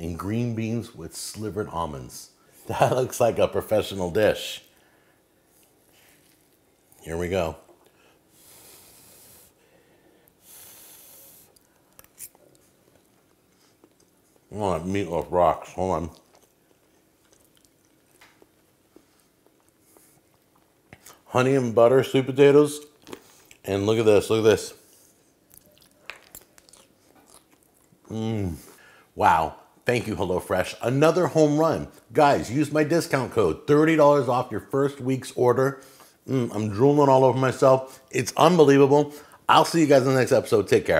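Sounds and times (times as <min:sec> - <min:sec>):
breathing through the nose: 0:08.0 - 0:11.6
chewing food: 0:15.2 - 0:21.2, 0:22.8 - 0:23.7, 0:24.9 - 0:28.1.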